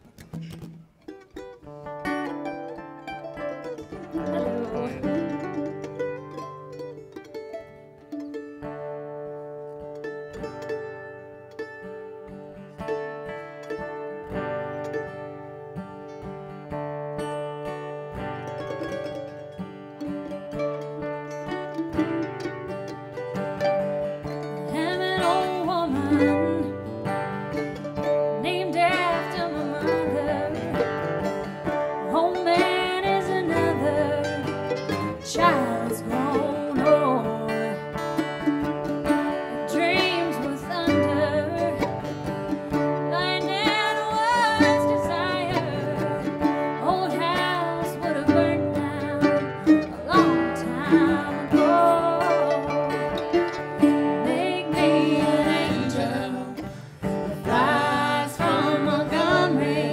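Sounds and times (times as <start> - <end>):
acoustic guitars and mandolin: 0.0 - 59.9
woman singing: 4.0 - 5.7, 24.4 - 42.1, 42.8 - 59.9.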